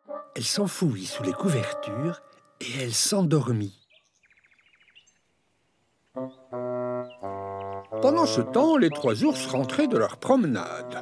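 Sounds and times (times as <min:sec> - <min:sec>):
faint bird trill: 0:03.7 - 0:05.3.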